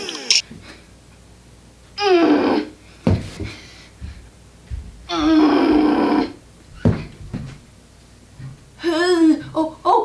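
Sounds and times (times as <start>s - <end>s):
thud of landing on carpet: 3.0s - 5.0s, 6.7s - 7.6s.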